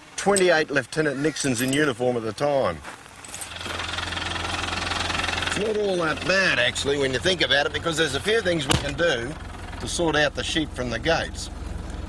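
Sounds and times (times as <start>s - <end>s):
vehicle engine running: 3.4s - 12.0s.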